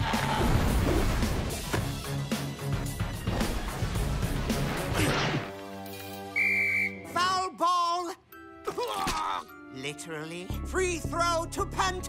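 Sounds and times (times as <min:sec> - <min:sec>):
cartoon action music: 0:02.9 - 0:05.6
high whistle tone: 0:06.3 - 0:07.2.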